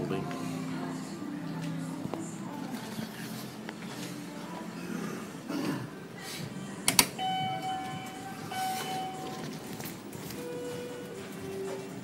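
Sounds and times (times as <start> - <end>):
electronic chime tone: 7.2 - 9.4.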